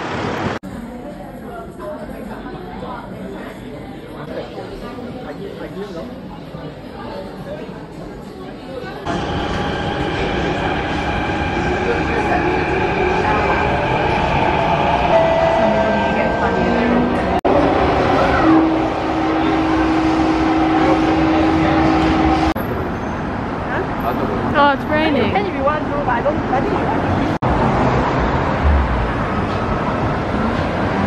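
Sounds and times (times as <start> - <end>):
train wheels on rail: 9.1 - 23.6.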